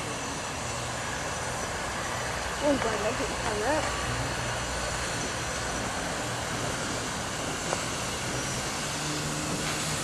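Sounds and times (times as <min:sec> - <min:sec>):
steam locomotive rumble and hiss: 0:00.0 - 0:10.0.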